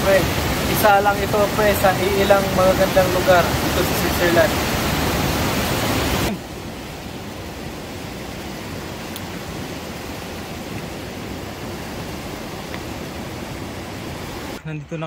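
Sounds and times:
river rushing white water: 0.0 - 14.6.

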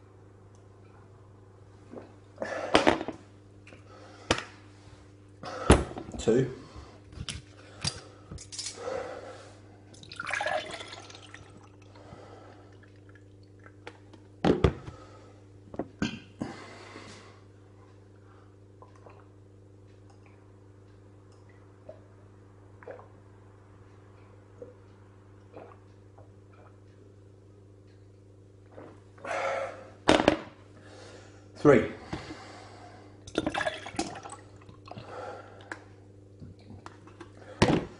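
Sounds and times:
thick gel glugging into glass: 9.9 - 11.5
person gasping: 29.2 - 29.9.

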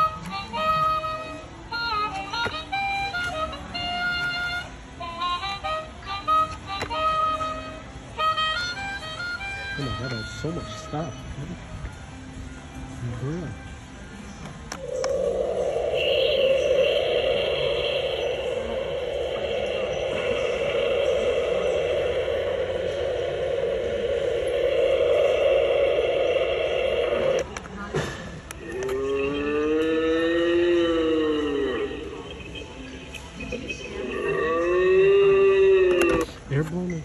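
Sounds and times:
rough drone from small speaker: 14.7 - 36.4
spooky voice-like calls: 14.8 - 27.7, 28.5 - 32.8, 33.7 - 36.3.

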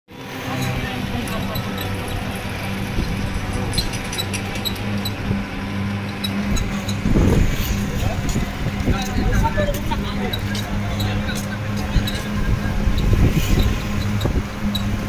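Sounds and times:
surge of noise: 0.1 - 15.0
vehicle engine running: 0.1 - 15.0.

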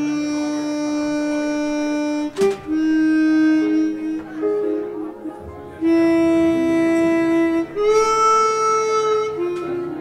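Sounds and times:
harmonica holding long note: 0.0 - 10.0.

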